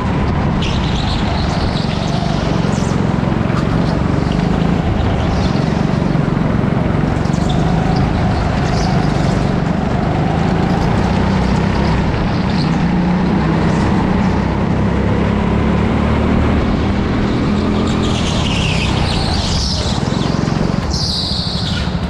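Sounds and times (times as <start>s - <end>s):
go-kart engine running: 0.0s - 22.0s.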